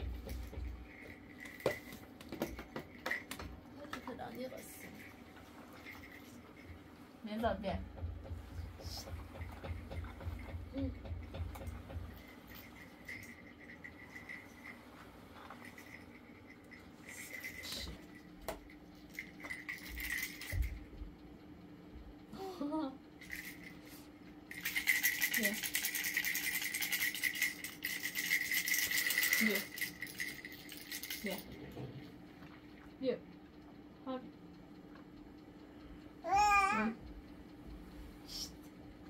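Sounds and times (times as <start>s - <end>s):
plastic baby rattle shaking: 15.4s - 18.1s, 19.0s - 20.8s, 23.2s - 23.7s, 24.5s - 31.5s.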